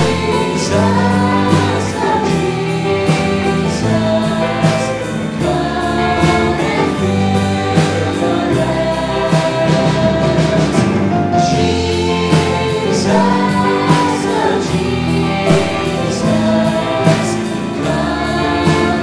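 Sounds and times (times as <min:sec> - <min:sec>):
instrumental backing with beat: 0:00.0 - 0:19.0
women singing in harmony: 0:00.0 - 0:19.0.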